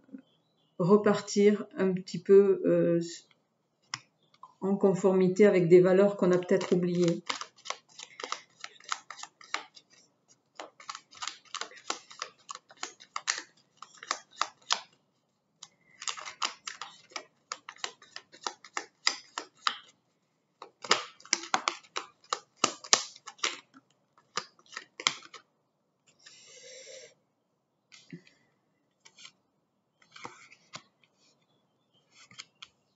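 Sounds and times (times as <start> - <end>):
cards being shuffled: 6.2 - 15.0, 15.6 - 20.0, 20.6 - 25.4, 29.0 - 29.4, 30.0 - 31.3, 32.1 - 32.7
rustle of cards: 6.2 - 20.0, 20.6 - 25.4, 29.0 - 29.4, 30.0 - 31.4, 32.0 - 32.7.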